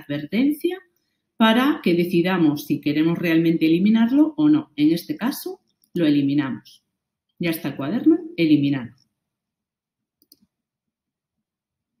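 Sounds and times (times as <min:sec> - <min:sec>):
faint computer mouse clicks: 0:10.2 - 0:10.5.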